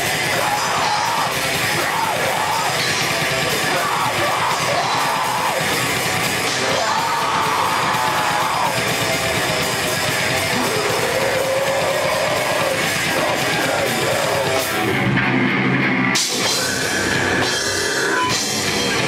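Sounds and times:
rock band playing live: 0.0 - 19.0.

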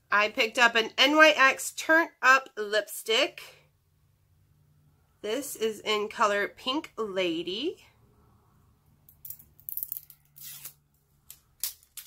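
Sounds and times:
packaging tearing: 9.7 - 10.8.

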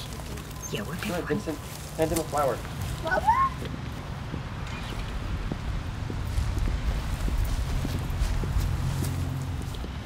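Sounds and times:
footsteps on concrete: 5.3 - 10.0.

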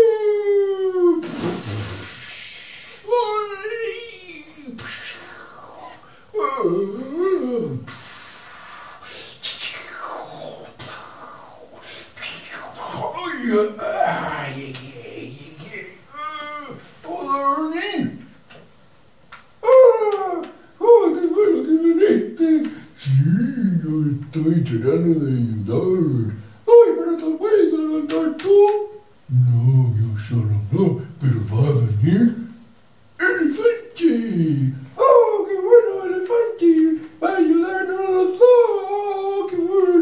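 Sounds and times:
person whimpering howl-like cries: 0.0 - 1.4, 19.6 - 21.1
person wailing: 0.0 - 7.9, 12.8 - 17.9, 19.6 - 22.7.

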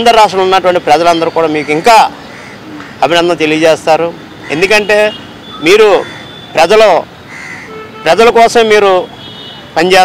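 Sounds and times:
man speaking: 0.0 - 7.1, 8.0 - 9.1, 9.8 - 10.0.

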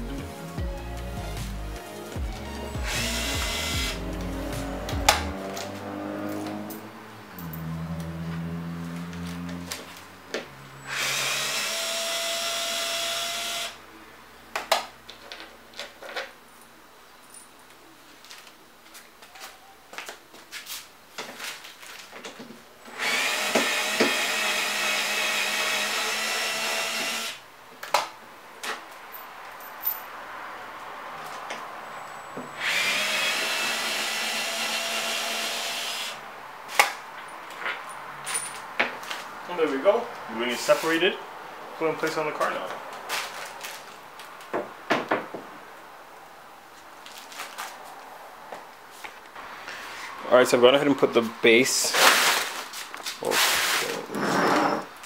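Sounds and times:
cordless screwdriver whirring: 2.9 - 4.0.

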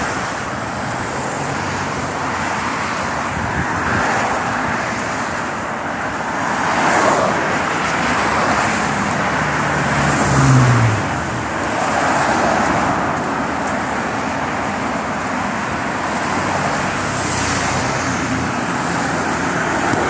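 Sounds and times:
cars passing on a road: 0.0 - 20.0.

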